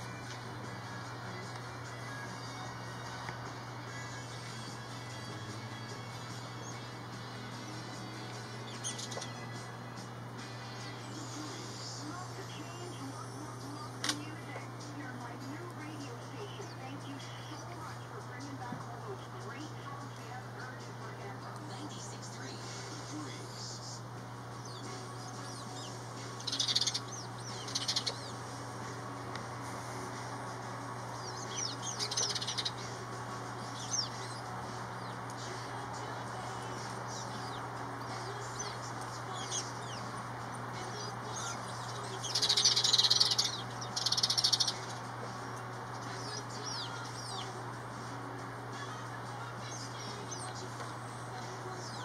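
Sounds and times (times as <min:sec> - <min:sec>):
sparrows chirping: 0:00.0 - 0:52.0
steady low hum: 0:00.0 - 0:52.0.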